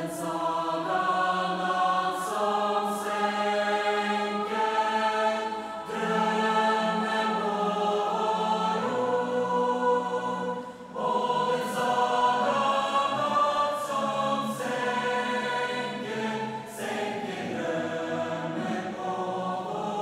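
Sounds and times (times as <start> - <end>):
choir holding long notes: 0.0 - 20.0.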